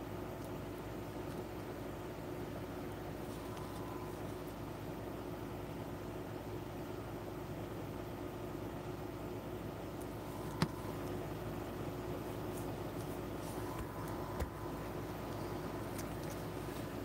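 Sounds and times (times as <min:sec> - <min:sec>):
faint constant tones: 0:00.0 - 0:17.0
low background hum: 0:00.0 - 0:17.0.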